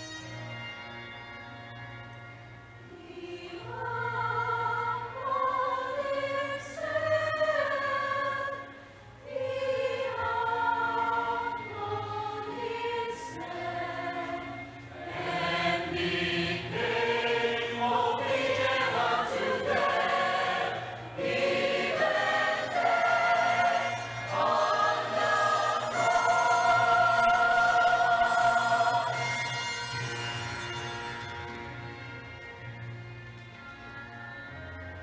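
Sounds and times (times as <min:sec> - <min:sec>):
mixed choir singing an anthem: 0:02.9 - 0:29.5.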